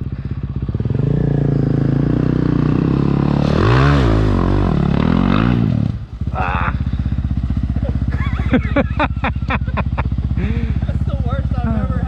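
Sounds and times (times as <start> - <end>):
motorcycle engine revving under load: 0.0 - 12.0.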